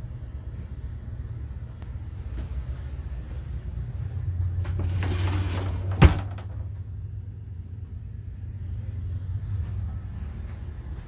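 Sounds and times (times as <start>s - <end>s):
low steady hum: 0.0s - 11.0s
wooden door shutting: 4.7s - 6.8s.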